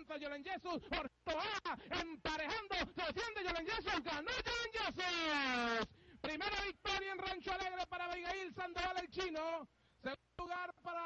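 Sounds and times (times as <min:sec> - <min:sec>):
man announcing horse race: 0:00.0 - 0:11.0.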